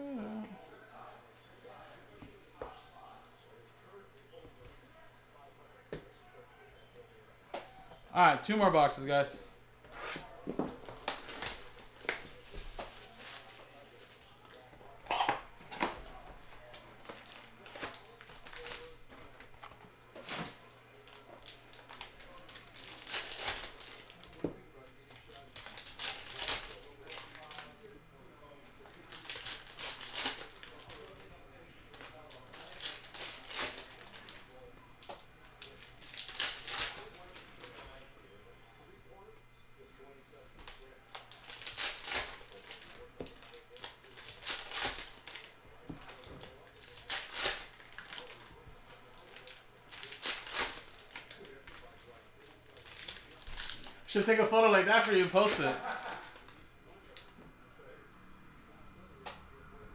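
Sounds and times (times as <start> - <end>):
foil packs torn and crinkled: 17.1 - 19.0, 20.2 - 24.4, 25.2 - 27.7, 28.9 - 31.2, 31.9 - 34.4, 35.6 - 37.7, 40.6 - 56.6
cards being handled: 40.6 - 56.6.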